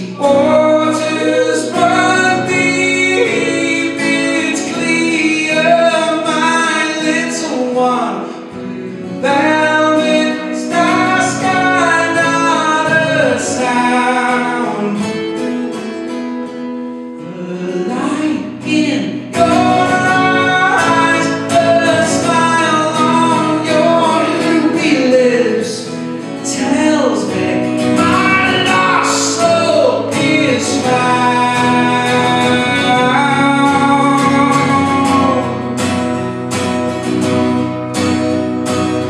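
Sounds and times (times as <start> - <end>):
man singing: 0.0 - 15.7, 17.1 - 36.0
strummed acoustic guitar: 0.0 - 39.0.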